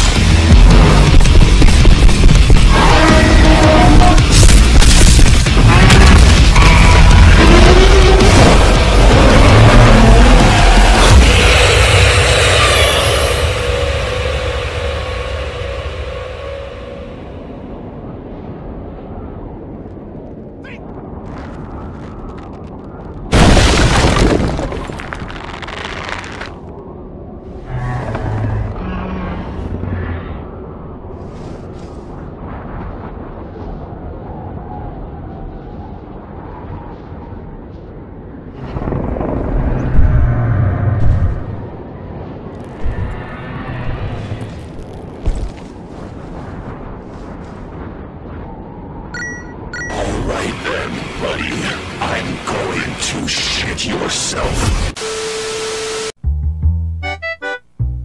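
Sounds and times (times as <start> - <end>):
heavy explosion blast: 0.0 - 12.8, 20.8 - 25.6
booms and sharp impacts: 0.0 - 15.1
heavy action soundtrack music: 0.0 - 17.7, 49.8 - 55.0
heavy low rumble: 0.0 - 55.0.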